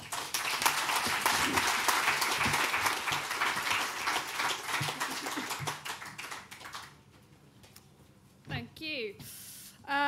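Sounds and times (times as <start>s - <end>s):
audience applauding: 0.0s - 7.1s.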